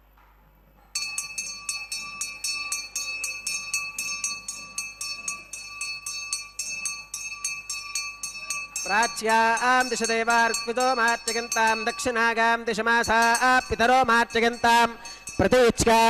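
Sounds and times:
hand bell ringing fast: 1.0 - 16.0
chanting: 1.1 - 16.0.

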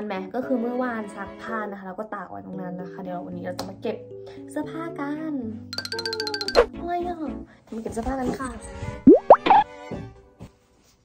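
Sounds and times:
light background music: 0.0 - 11.0
rising pops: 9.1 - 9.6.

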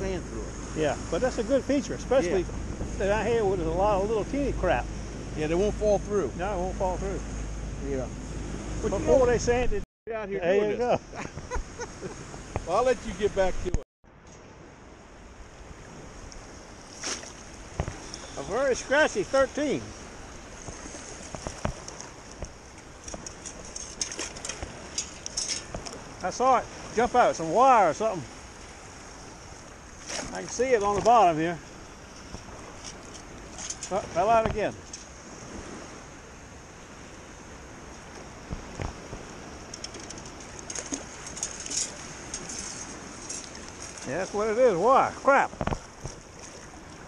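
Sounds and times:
small splashes and trickles: 15.8 - 36.0, 37.8 - 47.0
water sloshing around legs: 16.4 - 18.4, 28.1 - 34.2, 37.9 - 44.2, 45.4 - 47.0.

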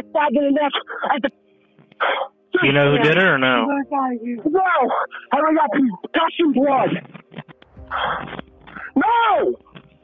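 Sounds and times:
person crying out over phone: 8.9 - 9.6.

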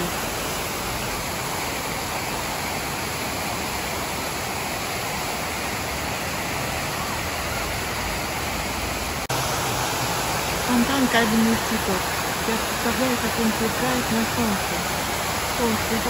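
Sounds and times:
fountain water splashing: 0.0 - 16.0.

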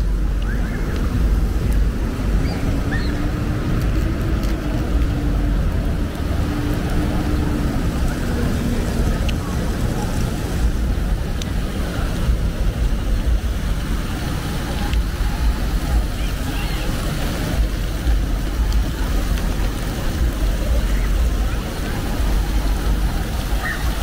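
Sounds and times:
low traffic rumble: 0.0 - 24.0
vehicle engine hum: 0.0 - 24.0.

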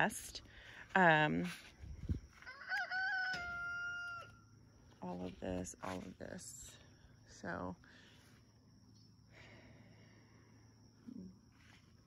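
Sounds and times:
rooster crowing: 2.4 - 4.5.

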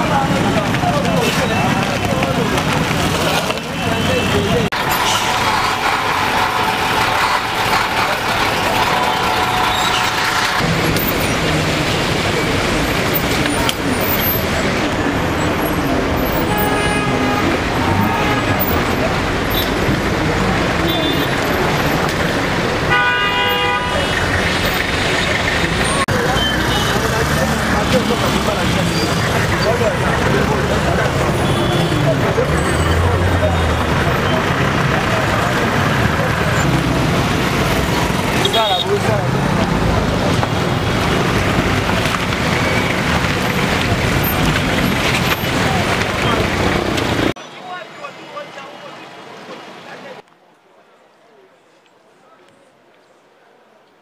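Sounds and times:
busy road traffic: 0.0 - 54.0
car horns honking: 3.7 - 11.4, 15.2 - 19.9, 20.6 - 34.7, 35.8 - 39.2.

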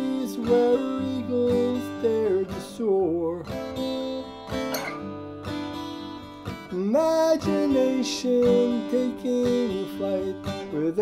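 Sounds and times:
man singing long notes: 0.0 - 3.5, 6.7 - 11.0
acoustic guitar strummed: 0.0 - 11.0.

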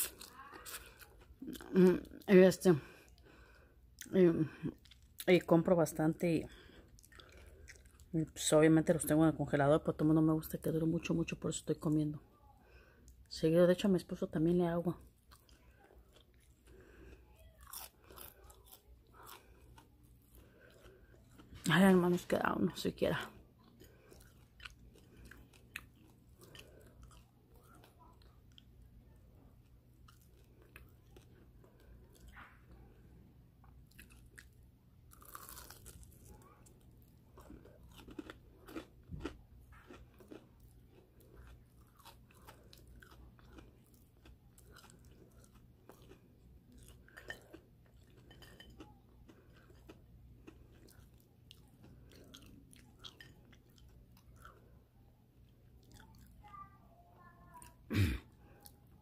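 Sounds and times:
chewing crunchy food: 0.0 - 4.1, 4.7 - 5.5, 6.5 - 8.5, 15.0 - 22.3, 23.0 - 56.5.

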